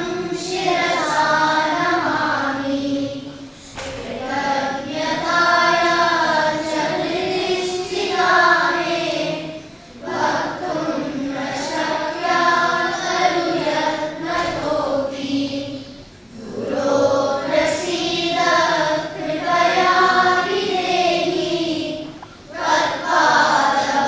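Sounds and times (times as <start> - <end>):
children chanting in unison: 0.0 - 24.0.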